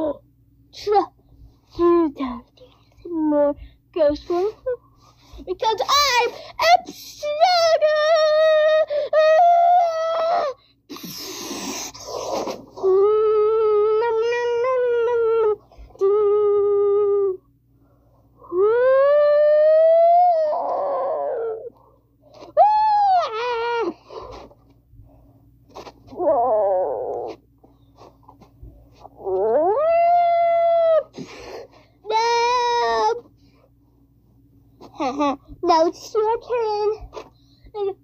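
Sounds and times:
child growling: 0:18.5 - 0:21.8, 0:26.1 - 0:27.4, 0:29.2 - 0:31.1
child wailing monster calls: 0:18.5 - 0:21.8, 0:22.6 - 0:24.0, 0:26.1 - 0:27.4, 0:29.2 - 0:31.2.

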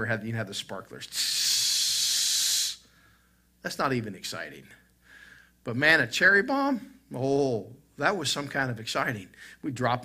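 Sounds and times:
man hissing through teeth: 0:01.1 - 0:02.9.

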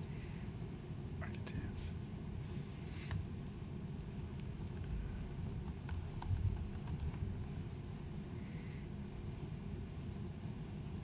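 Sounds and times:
low room hum: 0:00.0 - 0:11.0
laptop keyboard typing: 0:04.0 - 0:07.8.

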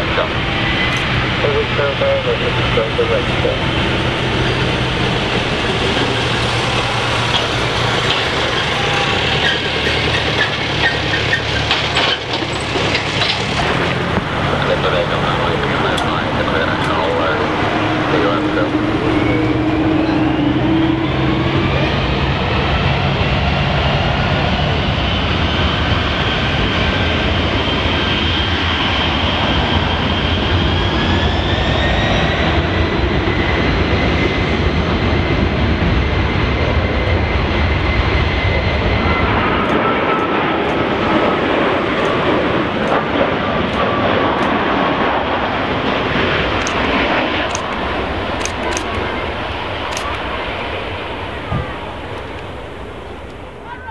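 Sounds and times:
jet engine noise: 0:00.0 - 0:53.9
jet engine whine rising: 0:00.0 - 0:53.9.

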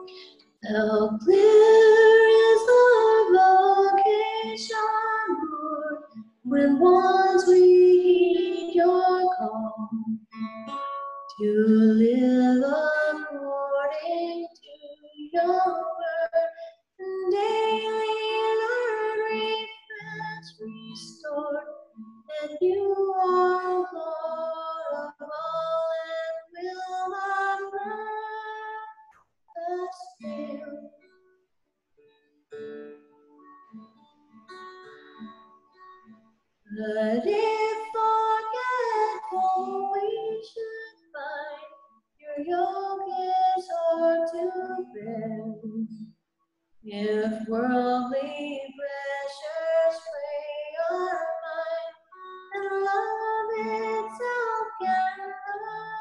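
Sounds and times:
woman singing a hymn: 0:00.0 - 0:10.1, 0:11.3 - 0:28.9, 0:29.6 - 0:30.9, 0:36.7 - 0:46.0, 0:46.9 - 0:56.0.

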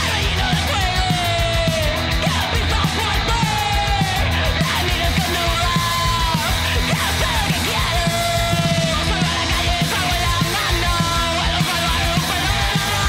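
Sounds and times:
man yelling vocals: 0:00.0 - 0:13.0
punk rock song: 0:00.0 - 0:13.0.

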